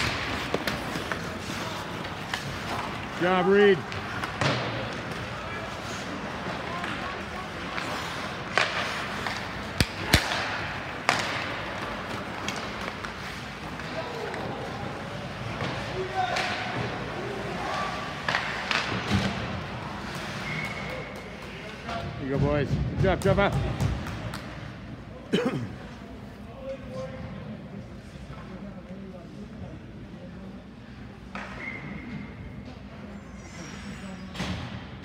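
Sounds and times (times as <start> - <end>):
puck and sticks cracking: 0.0 - 5.5, 6.4 - 14.7, 15.4 - 20.1
skating on ice: 0.0 - 21.9.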